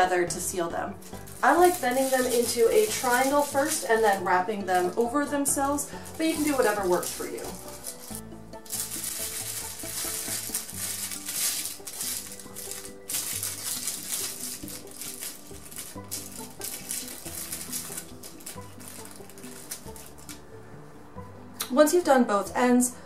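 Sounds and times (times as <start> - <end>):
background music: 0.0 - 23.0
aluminium foil crinkling: 1.0 - 20.4.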